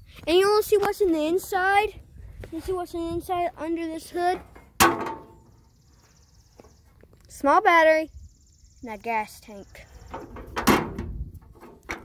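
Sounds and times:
metal hood panel clunk: 0:04.8 - 0:05.4, 0:10.4 - 0:12.0.

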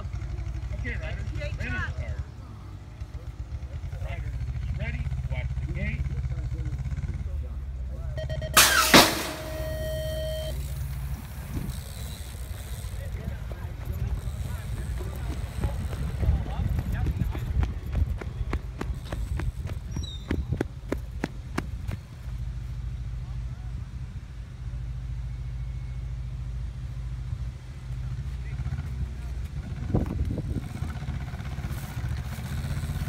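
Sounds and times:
voices speaking: 0:00.0 - 0:19.5
wind buffeting microphone: 0:11.1 - 0:22.2, 0:29.5 - 0:31.2.

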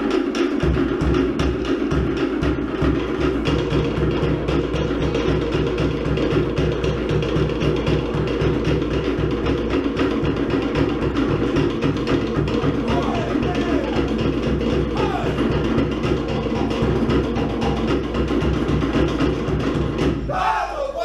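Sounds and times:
wooden slit drums: 0:00.0 - 0:20.4.

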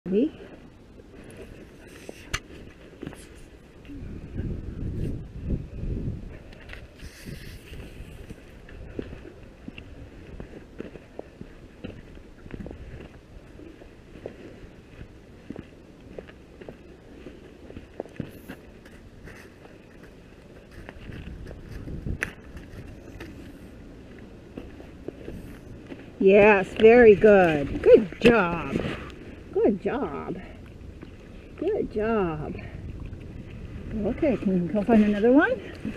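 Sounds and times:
footsteps on dirt: 0:06.3 - 0:29.5
low rumbles: 0:19.8 - 0:35.9.

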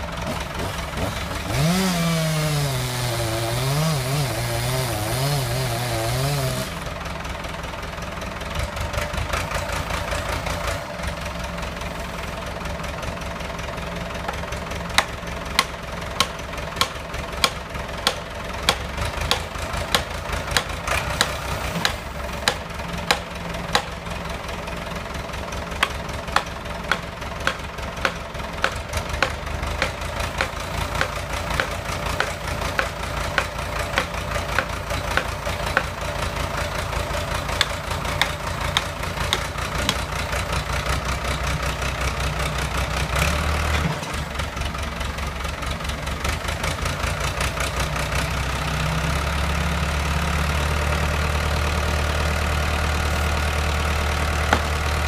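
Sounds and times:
tractor engine running: 0:00.0 - 0:55.0.

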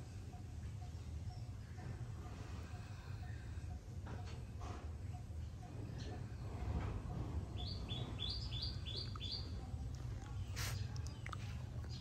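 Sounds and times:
bird chirping: 0:07.5 - 0:09.7.

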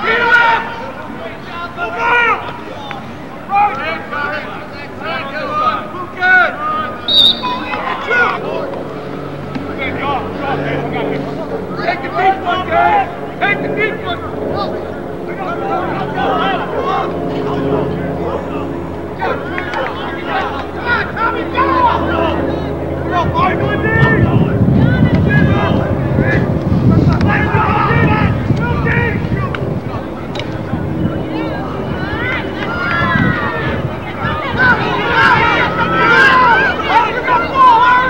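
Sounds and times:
people talking: 0:00.0 - 0:38.0
scattered voices: 0:00.0 - 0:38.0
wind buffeting microphone: 0:22.7 - 0:36.8.

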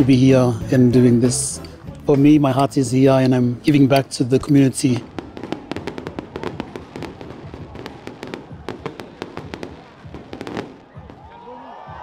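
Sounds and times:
fireworks crackling: 0:00.0 - 0:11.4.

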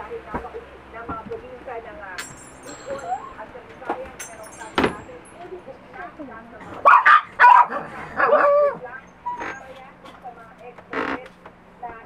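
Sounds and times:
dog barking: 0:06.8 - 0:08.8.

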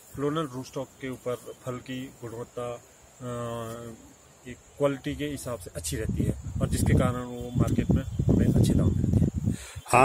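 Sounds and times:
man talking: 0:00.0 - 0:09.2
crickets buzzing: 0:00.0 - 0:10.0.

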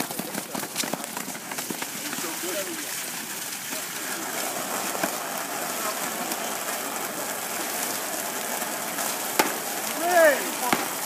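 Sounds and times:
water splashing on pavement: 0:00.0 - 0:11.0
water spraying from hose: 0:00.0 - 0:11.0.

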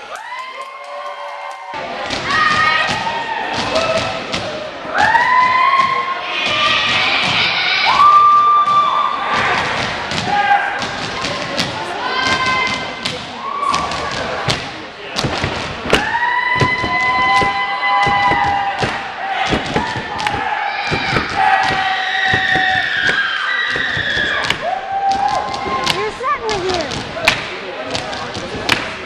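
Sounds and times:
sharp claps and thumps: 0:13.7 - 0:29.0.

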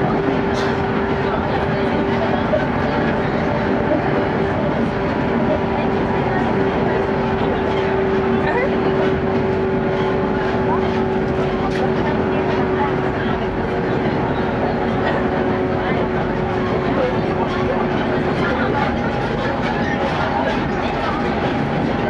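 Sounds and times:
steady train hum: 0:00.0 - 0:22.0
train wheels rumbling on rails: 0:00.0 - 0:22.0.

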